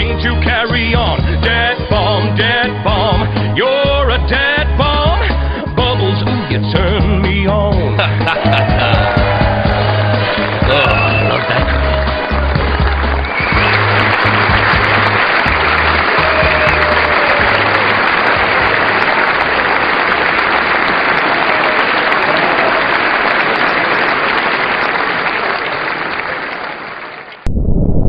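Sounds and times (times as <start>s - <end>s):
low bass notes of song: 0.0s - 19.0s
crowd applauding and cheering: 7.8s - 27.5s.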